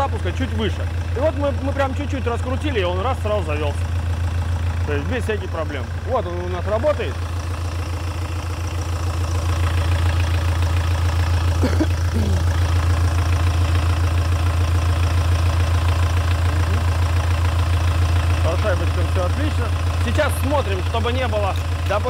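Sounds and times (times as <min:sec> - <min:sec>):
diesel engine idling: 0:00.0 - 0:22.0.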